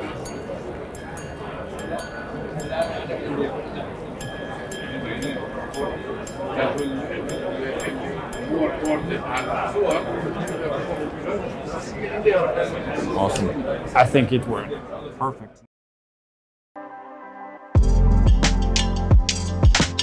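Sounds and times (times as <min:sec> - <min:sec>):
watch chiming gong strikes: 0:00.1 - 0:11.3.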